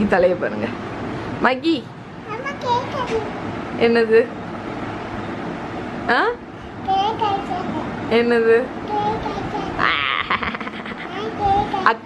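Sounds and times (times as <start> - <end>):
young child laughing: 9.8 - 11.4.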